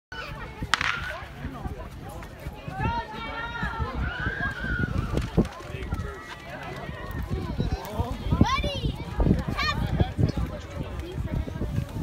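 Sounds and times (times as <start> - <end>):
sharp crack: 0.7 - 1.3.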